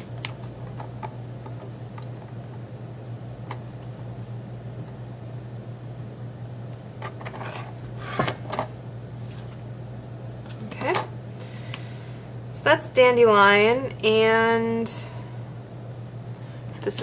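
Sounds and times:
low steady hum: 0.0 - 17.0
paper trimmer scraping and knocking: 7.2 - 8.5.

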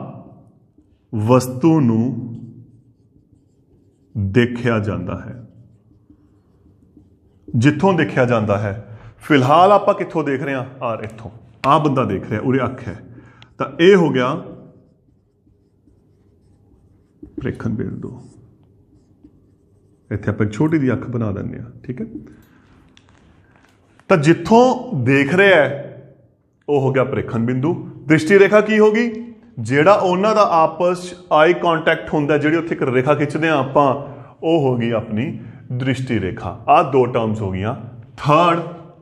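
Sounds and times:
marker pen writing on whiteboard: 0.0 - 24.3
man speaking: 1.1 - 2.5, 4.2 - 5.5, 7.5 - 14.8, 17.4 - 18.4.

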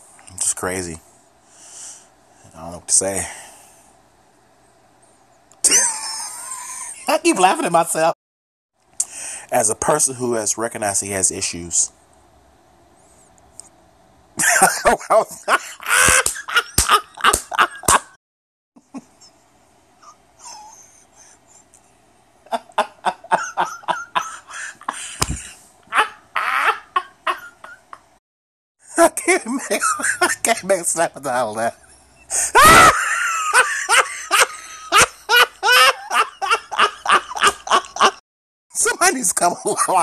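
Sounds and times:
man laughing: 5.6 - 7.6, 14.4 - 18.2, 22.5 - 28.0, 28.9 - 30.7, 31.3 - 38.2.

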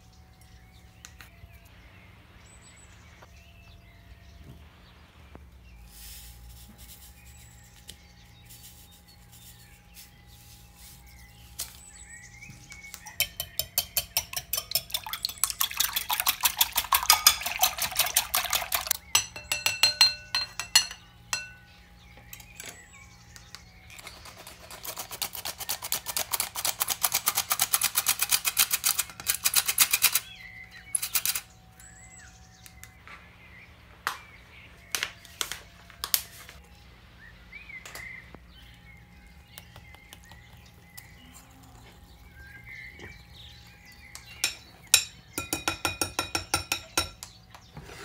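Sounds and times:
whisk clinking against glass bowl: 13.1 - 21.6, 44.4 - 47.2.

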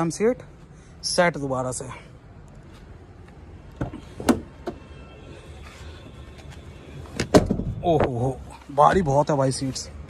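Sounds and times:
car door latch clunk: 3.8 - 4.8, 7.2 - 7.7.

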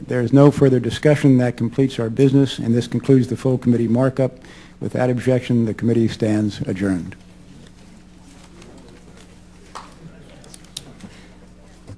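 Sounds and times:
steady low hum: 0.0 - 11.9.

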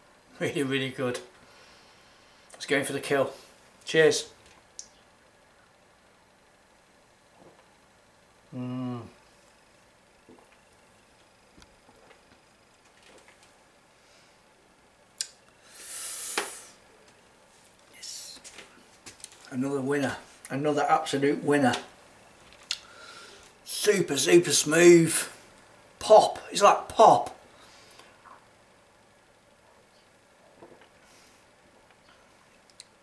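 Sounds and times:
man exhaling through mouth: 15.6 - 16.8.

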